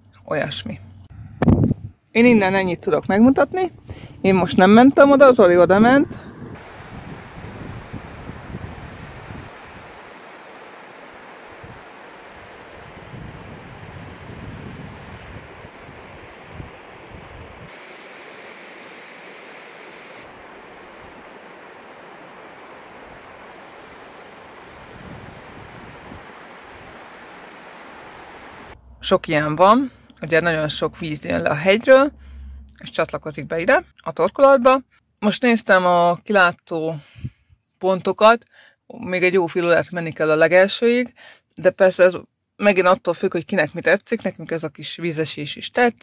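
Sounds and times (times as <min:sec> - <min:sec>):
wind buffeting microphone: 0:01.0 - 0:10.3, 0:11.1 - 0:17.7, 0:20.2 - 0:32.9
waterfall and stream rushing: 0:06.6 - 0:13.1, 0:17.7 - 0:28.8.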